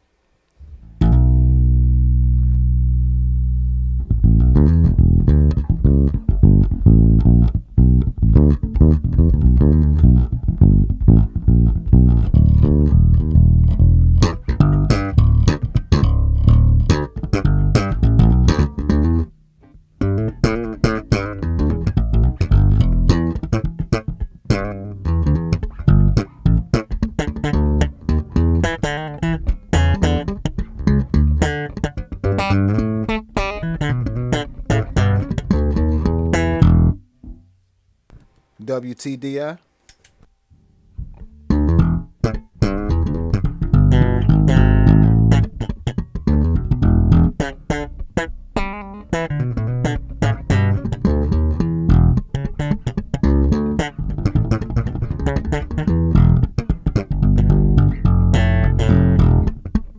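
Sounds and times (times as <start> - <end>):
electric bass plucked notes: 0.6 - 37.6, 40.9 - 59.9.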